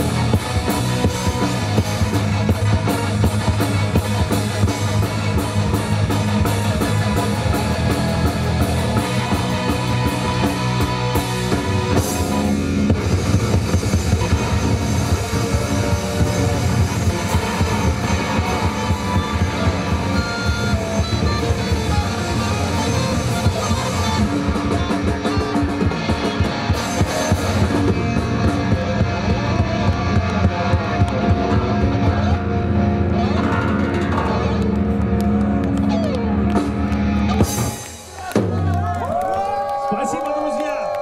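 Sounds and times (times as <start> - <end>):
drum kit beats: 0.0 - 39.7
rock band playing live: 0.0 - 39.7
electric guitar: 0.0 - 41.0
keyboards: 0.0 - 41.0.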